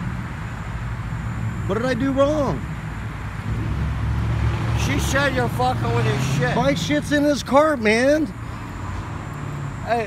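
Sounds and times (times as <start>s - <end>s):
vehicle engine rumble: 0.0s - 10.0s.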